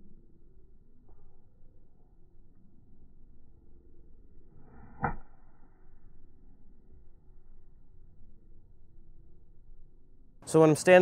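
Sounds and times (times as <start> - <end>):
golf club striking ball: 4.9 - 5.4.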